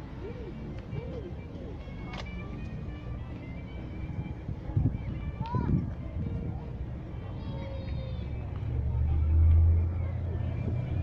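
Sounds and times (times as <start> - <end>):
car engine rumble: 7.9 - 11.0.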